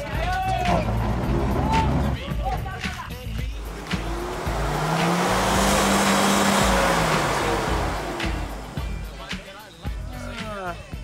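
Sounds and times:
engine revving hard: 0:03.4 - 0:09.4.

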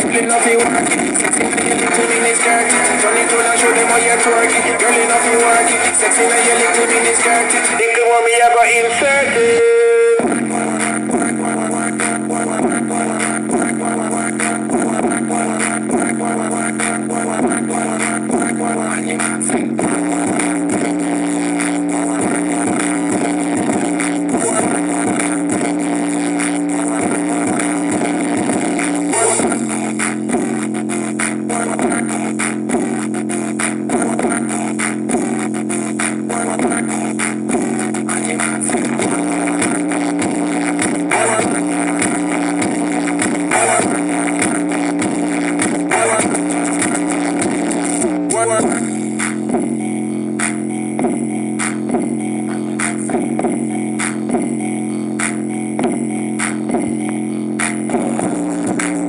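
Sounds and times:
song from loudspeaker with bass: 0:00.0 - 0:59.0.

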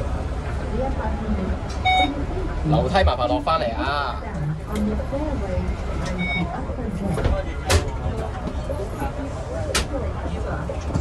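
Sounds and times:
people talking indistinctly: 0:00.6 - 0:11.0
short electronic beep: 0:01.8 - 0:02.2.

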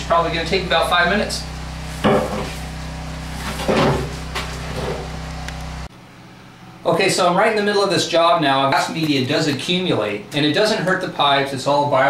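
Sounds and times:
pressure washer humming: 0:00.0 - 0:05.9.

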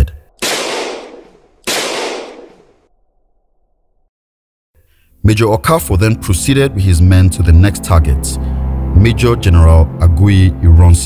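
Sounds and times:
loud bangs: 0:00.4 - 0:02.8.

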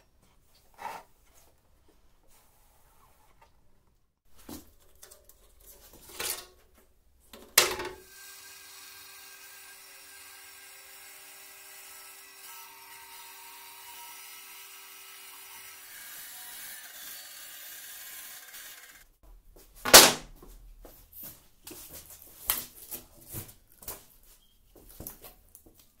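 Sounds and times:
band saw cutting: 0:08.0 - 0:19.1.

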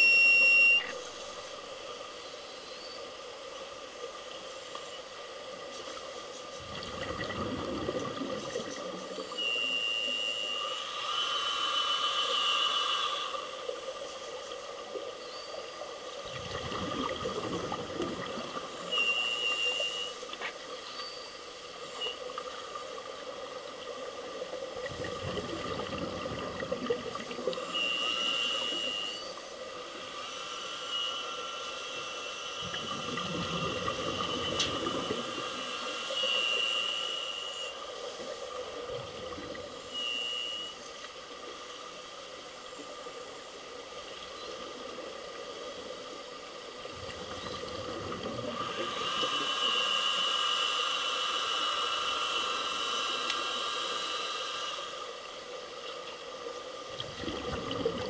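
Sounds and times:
exhaled bubbles rumbling: 0:06.6 - 0:09.2, 0:16.2 - 0:19.0, 0:24.5 - 0:27.8, 0:32.6 - 0:35.5, 0:46.9 - 0:48.9, 0:56.8 - 0:58.0
regulator inhalation hiss: 0:08.5 - 0:16.2, 0:17.1 - 0:42.5, 0:43.1 - 0:57.0.

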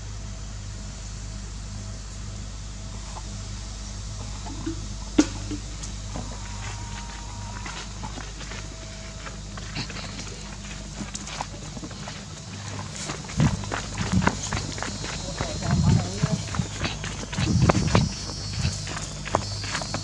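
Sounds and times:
steady low hum: 0:00.0 - 0:20.0
footsteps on leafy dirt path: 0:04.2 - 0:20.0.

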